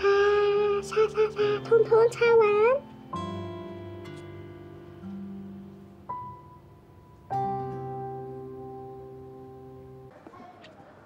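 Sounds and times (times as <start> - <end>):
acoustic guitar chords ringing: 0.2 - 10.1.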